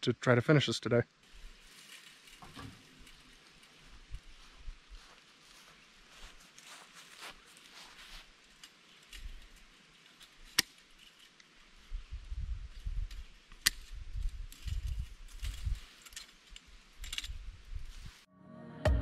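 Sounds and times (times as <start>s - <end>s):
sharp wire snaps: 13.1s - 17.4s.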